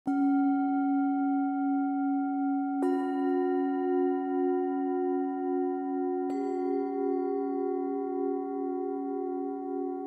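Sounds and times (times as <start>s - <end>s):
singing bowl ringing: 0.1s - 10.0s.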